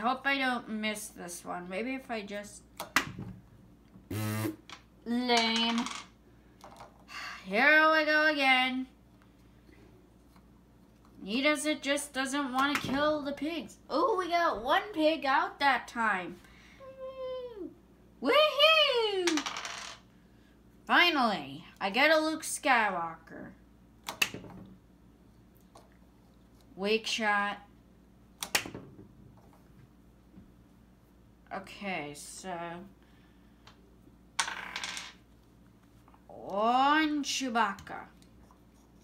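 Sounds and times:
die clattering on table: 34.4s - 35.2s.

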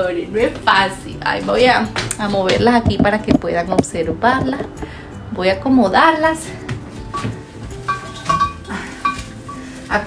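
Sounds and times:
flower stems rustling: 6.5s - 10.0s
stems clinking against ceramic vase: 7.1s - 10.0s.

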